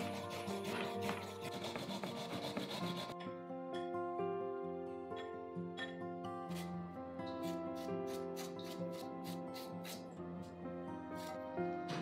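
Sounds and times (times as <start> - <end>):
carrot rasping on metal grater: 0.0 - 3.2, 7.4 - 10.0
background music: 0.0 - 12.0.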